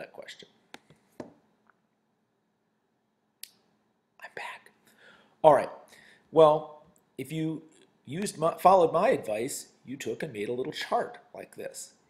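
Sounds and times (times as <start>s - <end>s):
man whispering: 4.2s - 4.8s.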